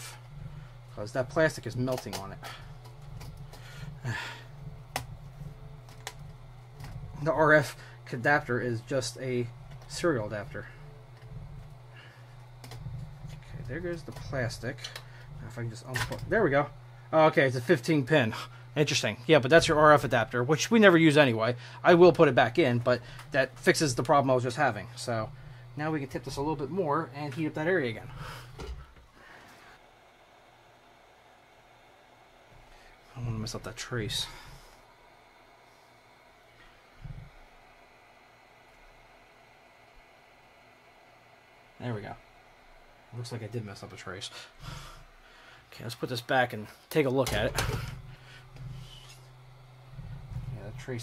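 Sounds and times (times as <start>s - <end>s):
hot-air station humming: 0.0s - 51.0s.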